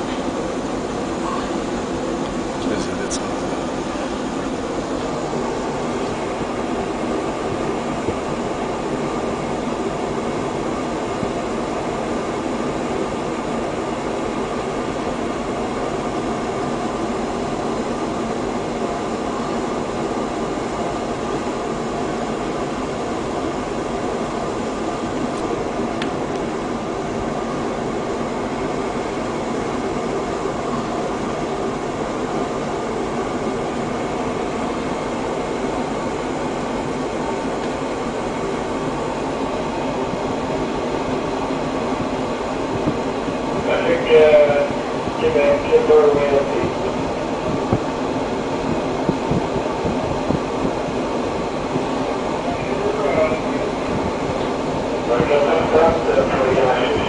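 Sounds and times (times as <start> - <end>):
ship engines droning: 0.0 - 57.0.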